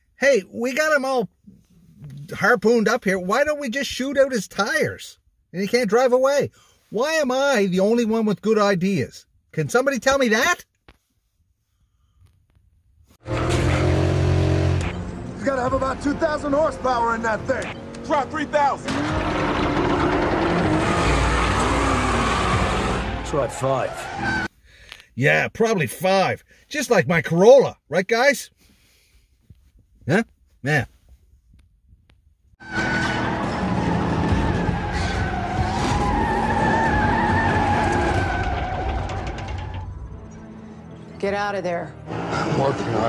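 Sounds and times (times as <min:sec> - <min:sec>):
car engine at high revs: 0:13.2 - 0:15.4, 0:16.0 - 0:23.3
car engine noise: 0:13.2 - 0:24.5, 0:32.6 - 0:40.9, 0:41.7 - 0:43.0
car tires squealing: 0:13.3 - 0:16.5, 0:17.4 - 0:24.5, 0:32.6 - 0:40.1, 0:42.1 - 0:43.0
tyres spinning: 0:18.1 - 0:24.5, 0:32.6 - 0:40.5.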